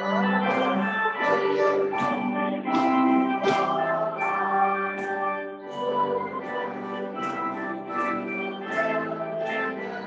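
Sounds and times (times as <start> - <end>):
organ-like keyboard chords: 0.0 - 10.0.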